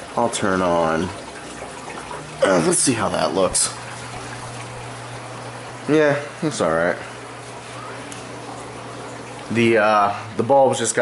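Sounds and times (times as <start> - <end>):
low steady hum: 0.0 - 11.0
water flowing and trickling: 0.0 - 11.0.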